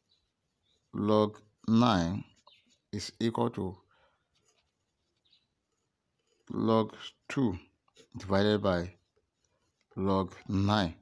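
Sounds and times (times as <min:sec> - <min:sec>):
pen scratching on paper: 0:04.3 - 0:10.8.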